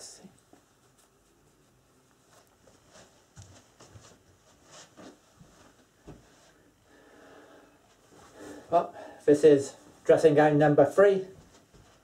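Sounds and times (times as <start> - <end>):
fabric rustling: 0.5 - 6.7.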